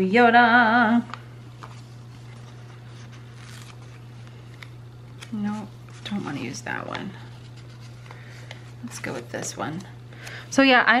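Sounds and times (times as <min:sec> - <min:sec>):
steady low hum: 0:00.0 - 0:11.0
sticker sheets rustling: 0:01.6 - 0:09.9.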